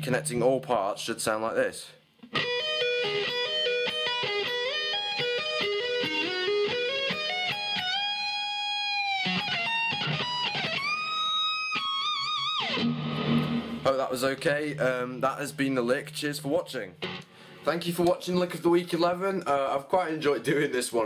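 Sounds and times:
electric guitar lick: 2.2s - 14.7s, 16.9s - 17.7s.

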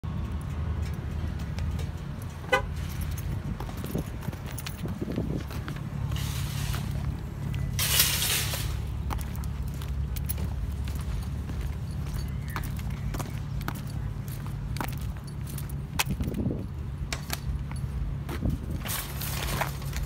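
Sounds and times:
traffic engine rumble: 0.0s - 20.0s
car horn toot: 2.5s - 2.8s.

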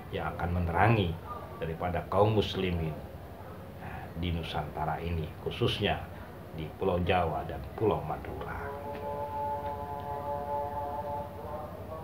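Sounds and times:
soft sustained chord: 7.9s - 12.0s.

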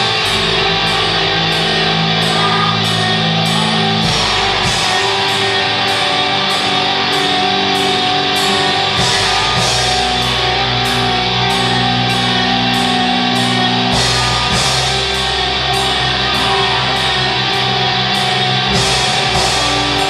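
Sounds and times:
bass guitar: 0.0s - 20.0s
drums with cymbal hits: 0.0s - 20.0s
electric guitars: 0.0s - 20.0s.

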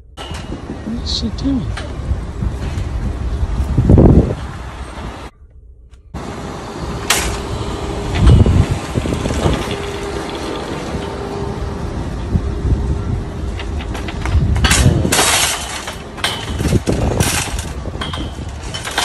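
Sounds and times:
metal shopping carts clanking: 0.0s - 3.0s, 6.9s - 12.4s, 13.0s - 19.0s
loud low rumble: 0.0s - 18.9s
traffic rumble: 0.0s - 19.0s.

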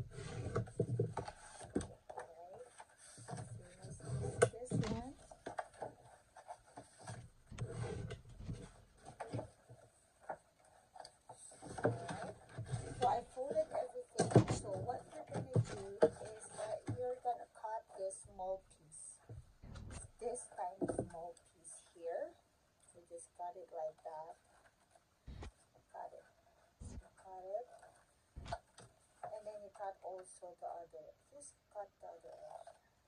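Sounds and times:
bone folder rubbing on paper: 6.4s - 8.8s.

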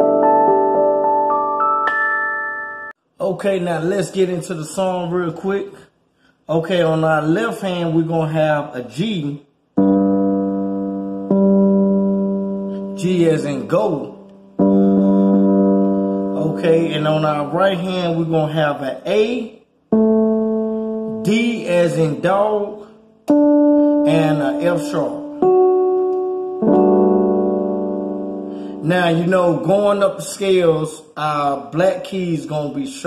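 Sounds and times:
electric piano low note: 9.8s - 17.5s, 19.9s - 29.6s.

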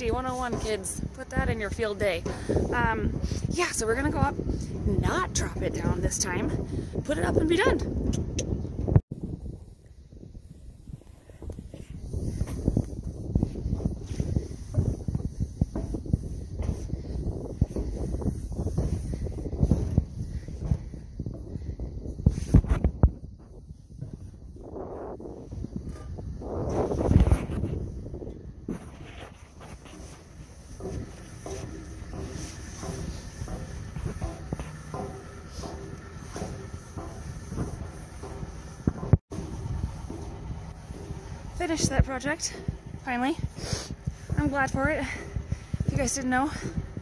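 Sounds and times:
footsteps on metal catwalk: 0.0s - 9.0s, 10.8s - 47.0s
wind buffeting microphone: 0.0s - 47.0s.

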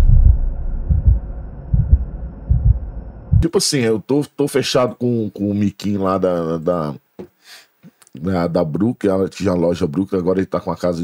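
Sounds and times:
whoosh: 0.0s - 3.4s
deep bass thumps: 0.0s - 3.5s
steady low hum: 0.0s - 4.0s.

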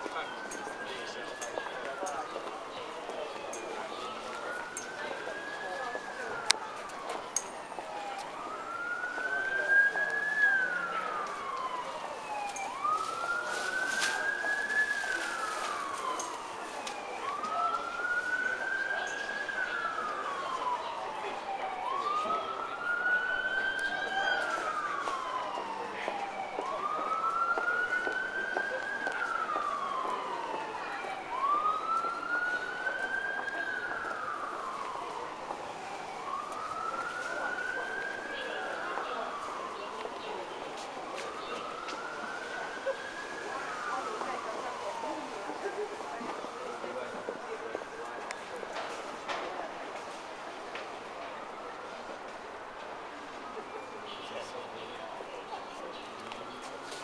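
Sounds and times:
wailing siren: 0.0s - 57.0s.

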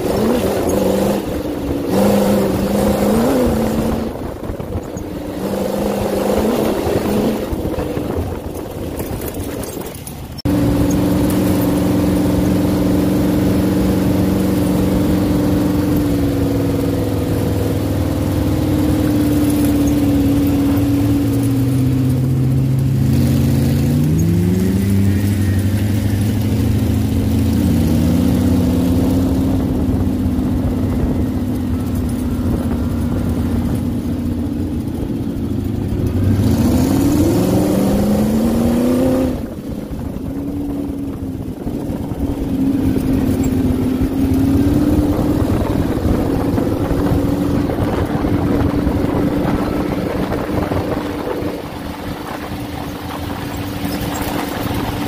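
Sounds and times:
engine running hard: 0.0s - 55.0s.

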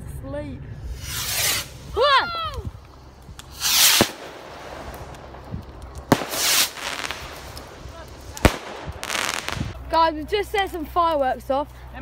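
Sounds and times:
fireworks hissing rush: 0.8s - 2.2s, 2.9s - 9.8s
fireworks banging: 0.9s - 9.8s.

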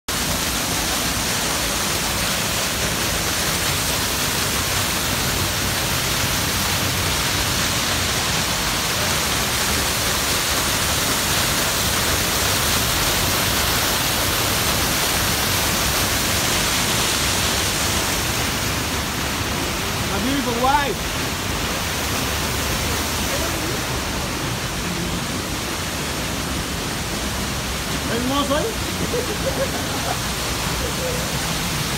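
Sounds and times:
waterfall rushing into pool: 0.1s - 31.9s.

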